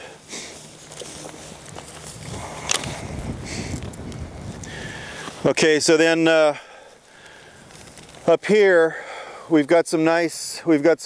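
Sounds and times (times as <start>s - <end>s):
footsteps: 0.0s - 8.4s
rustling: 0.0s - 8.8s
loppers snapping a branch: 1.7s - 3.0s.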